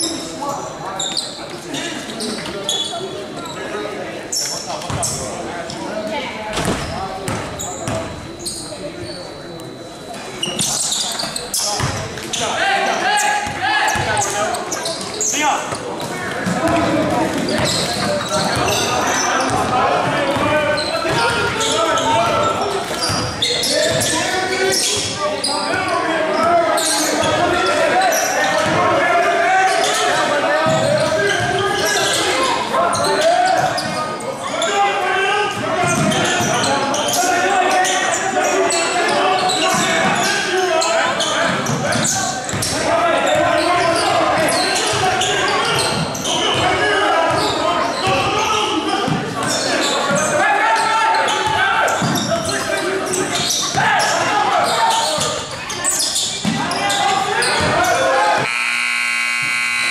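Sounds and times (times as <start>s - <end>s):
players' voices and shouts: 0.0s - 59.9s.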